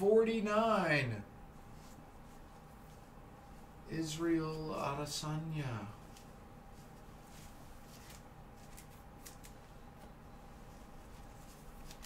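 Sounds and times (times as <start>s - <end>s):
trading cards rustling and clicking: 7.0s - 10.2s, 11.0s - 12.0s
faint steady tone: 9.6s - 11.7s.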